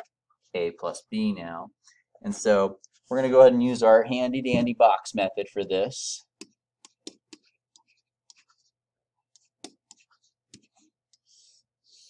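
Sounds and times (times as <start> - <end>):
stylus scratching: 6.4 - 12.0
stylus tapping on pen tablet: 9.4 - 11.2.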